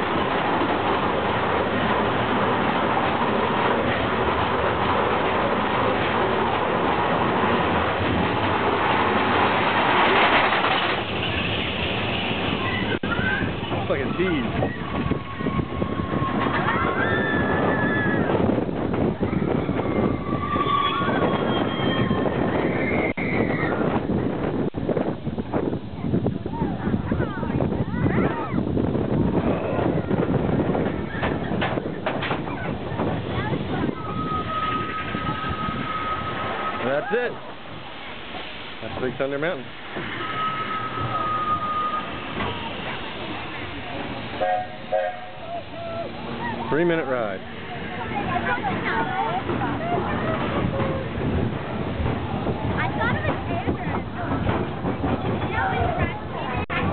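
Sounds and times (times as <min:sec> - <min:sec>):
roller coaster rattling on track: 0:00.0 - 0:56.9
wind on microphone: 0:00.0 - 0:56.9
voices: 0:11.2 - 0:18.4, 0:25.9 - 0:56.9.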